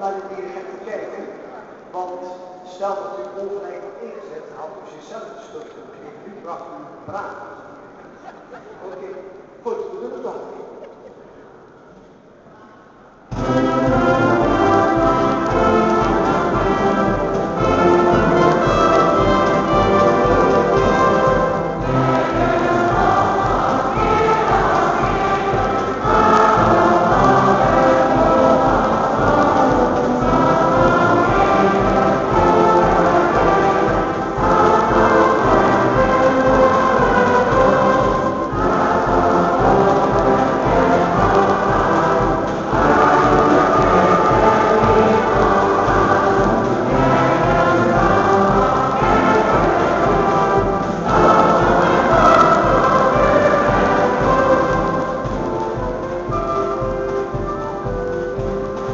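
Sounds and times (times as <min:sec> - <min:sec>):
choir singing a chorale: 0:13.3 - 0:58.9.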